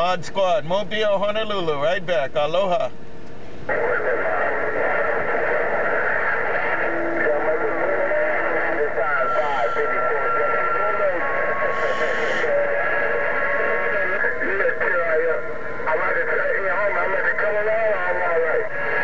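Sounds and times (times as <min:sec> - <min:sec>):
radio static hiss: 0:03.7 - 0:19.0
steady radio whistles: 0:03.7 - 0:19.0
voices through radio speaker: 0:03.7 - 0:19.0.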